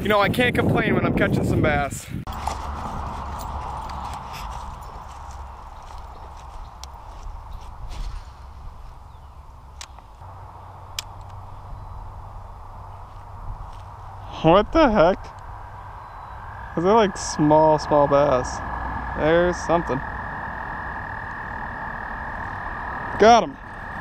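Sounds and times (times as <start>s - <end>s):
outdoor background hum: 2.2s - 24.0s.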